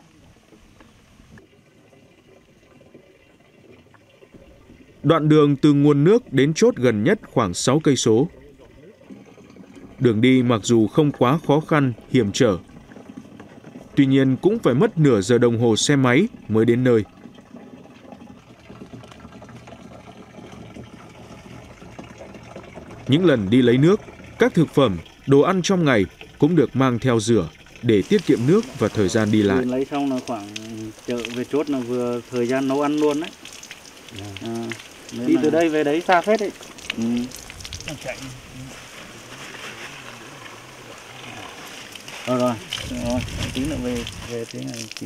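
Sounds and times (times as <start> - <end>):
water pouring into plastic jerrycan: 0.4 - 45.0.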